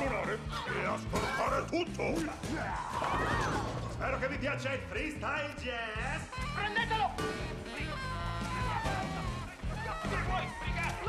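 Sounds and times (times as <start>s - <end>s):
bass-heavy backing music: 0.0s - 11.0s.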